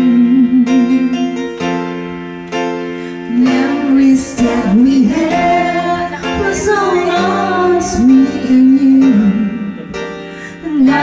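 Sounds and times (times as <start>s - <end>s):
sustained instrumental accompaniment: 0.1s - 11.0s
woman singing: 3.3s - 9.5s, 10.6s - 11.0s.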